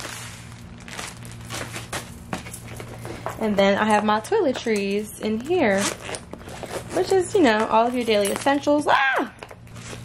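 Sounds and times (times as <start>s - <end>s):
plastic bag crinkling: 0.0s - 4.0s, 4.8s - 8.9s, 9.5s - 10.0s.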